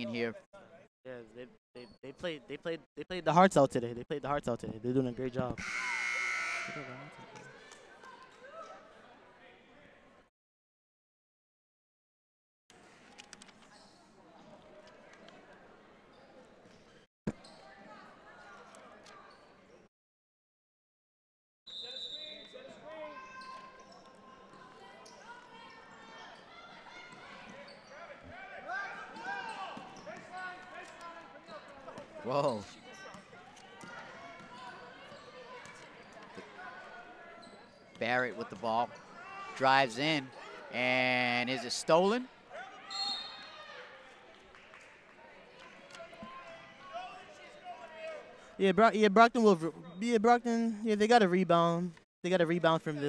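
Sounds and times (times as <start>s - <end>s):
scoreboard horn buzzing: 5.6s - 7.0s
people shouting in a gym: 24.8s - 30.6s, 42.5s - 44.0s.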